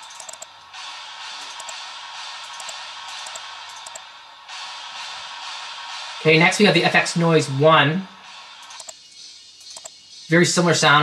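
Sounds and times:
synthesized noise sweep: 0:00.0 - 0:09.9.

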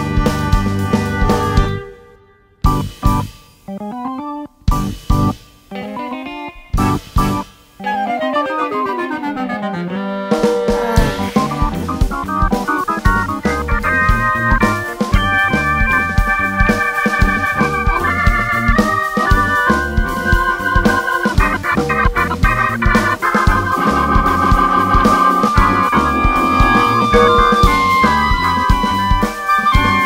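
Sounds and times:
pop band instrumental: 0:00.0 - 0:30.0
falling pitch glide: 0:07.8 - 0:12.3, 0:24.7 - 0:28.9.

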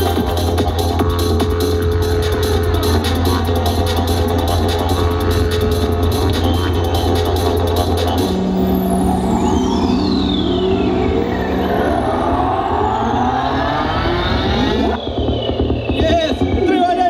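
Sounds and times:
low bass drone: 0:00.0 - 0:16.6
synthesizer pitch sweeps: 0:00.0 - 0:16.6.

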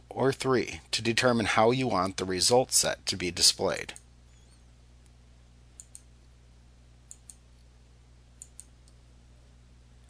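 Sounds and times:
low steady hum: 0:00.0 - 0:10.0
computer mouse clicks: 0:05.8 - 0:06.1, 0:07.1 - 0:07.4, 0:08.4 - 0:09.0.

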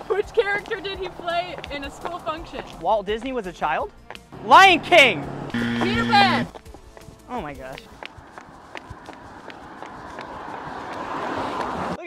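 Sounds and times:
high heels running on asphalt: 0:00.0 - 0:04.4, 0:05.5 - 0:12.0.

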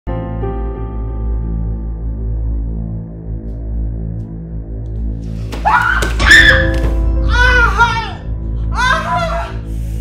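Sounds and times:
woman screaming: 0:05.6 - 0:09.7
low music drone: 0:06.6 - 0:10.0.

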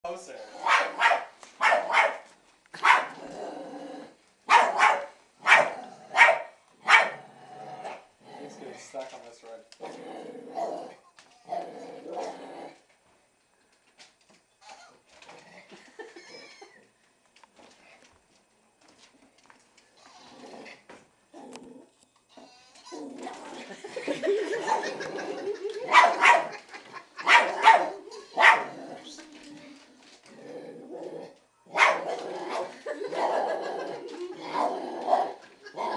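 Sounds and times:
small dog barking: 0:00.6 - 0:03.2, 0:04.5 - 0:07.2, 0:25.9 - 0:26.6, 0:27.2 - 0:28.8, 0:31.7 - 0:32.1.

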